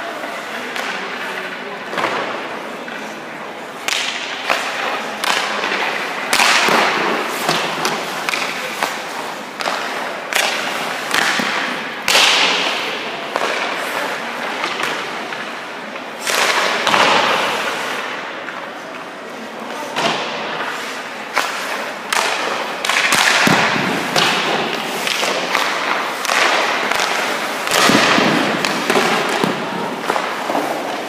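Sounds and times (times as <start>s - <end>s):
skate blades scraping ice: 2.3s - 31.0s.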